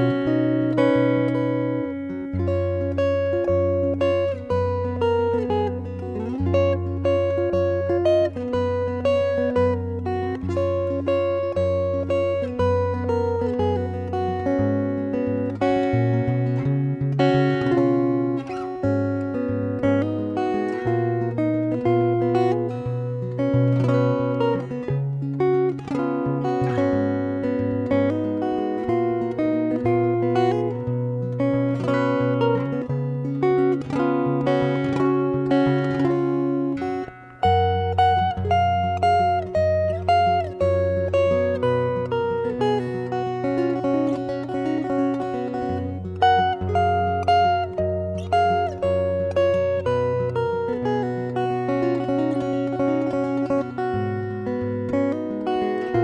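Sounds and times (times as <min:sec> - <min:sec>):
acoustic guitar plucked: 0:00.0 - 0:56.0.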